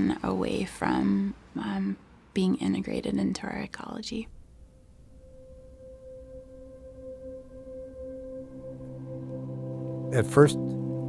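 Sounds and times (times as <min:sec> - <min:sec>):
steady held note: 0:04.4 - 0:11.0
lower note: 0:04.6 - 0:11.0.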